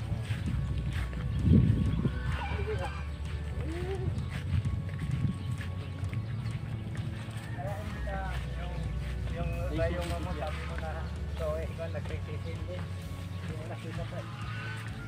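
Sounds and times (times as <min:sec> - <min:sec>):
steady low rumble: 0:00.0 - 0:13.2
animal calls: 0:01.5 - 0:04.7, 0:13.8 - 0:15.0.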